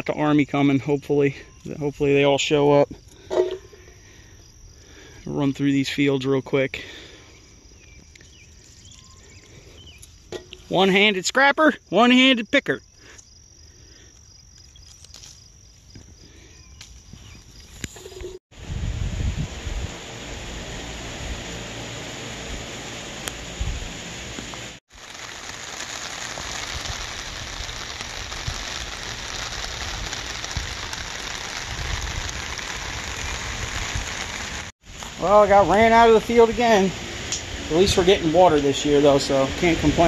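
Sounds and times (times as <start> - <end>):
faint high insect buzz: 2.9 - 10.7
wind buffeting microphone: 18.5 - 21.4, 26.7 - 34.7
rain on fabric canopy: 22.2 - 40.0.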